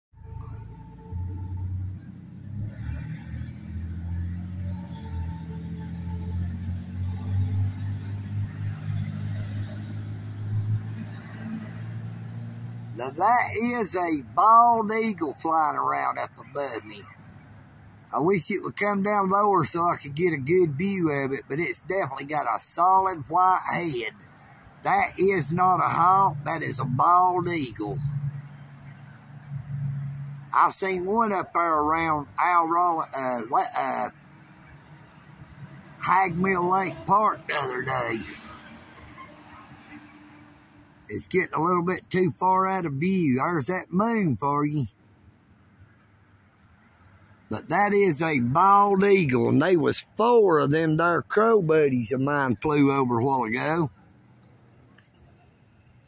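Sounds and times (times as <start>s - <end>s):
low motor vehicle rumble: 0.2s - 46.0s, 46.6s - 56.0s.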